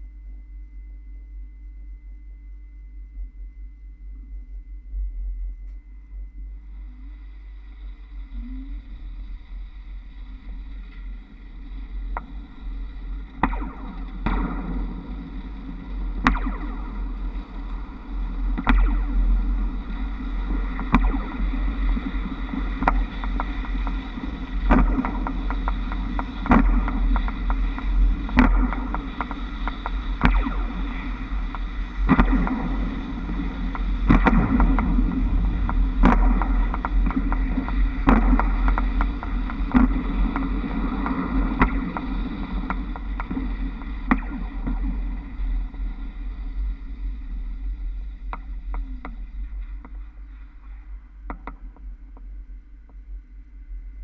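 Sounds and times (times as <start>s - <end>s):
wind rumbling over camera: 4.0s - 54.0s.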